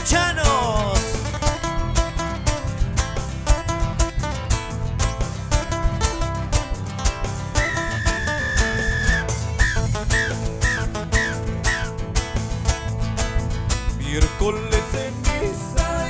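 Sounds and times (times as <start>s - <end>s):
steady beat and bass: 0.0s - 16.0s
strummed nylon-string guitars: 0.0s - 16.0s
high whistle: 7.6s - 12.0s
short falling whistles: 7.6s - 12.0s.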